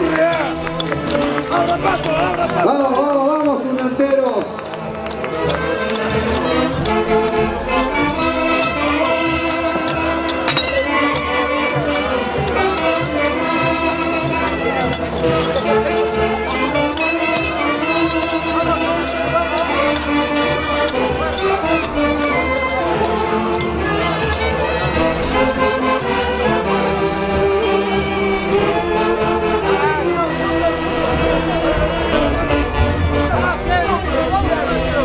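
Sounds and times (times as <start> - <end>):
folk orchestra playing dance music: 0.0 - 35.0.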